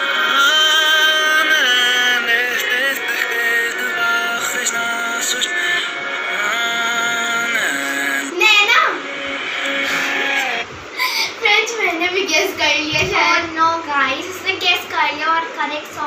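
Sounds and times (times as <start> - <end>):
song played backwards: 0.0 - 10.7
girl's voice: 8.3 - 9.0, 11.0 - 16.0.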